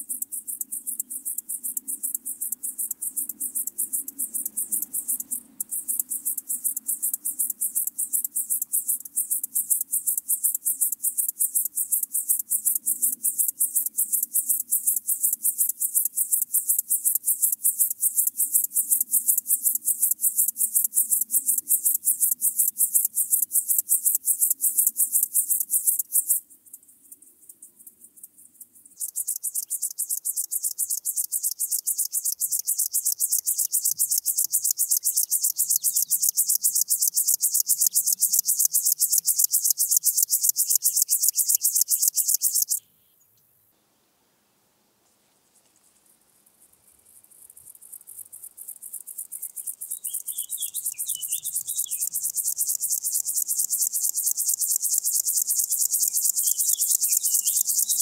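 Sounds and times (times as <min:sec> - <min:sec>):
grasshopper stridulating: 0:00.0 - 0:42.8, 0:45.6 - 0:58.0.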